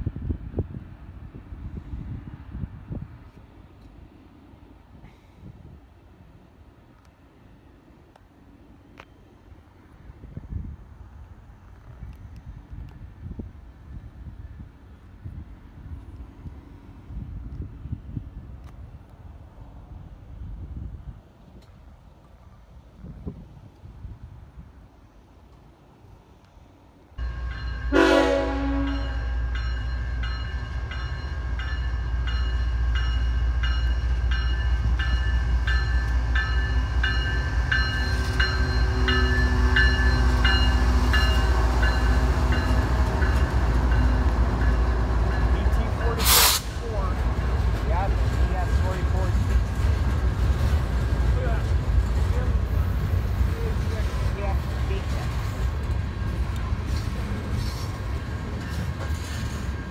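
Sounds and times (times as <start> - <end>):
freight locomotives passing: 0.0 - 59.9
train cars rumbling: 0.0 - 59.9
train horn blast: 27.2 - 29.4
locomotive bell ringing: 27.2 - 46.3, 58.1 - 59.9.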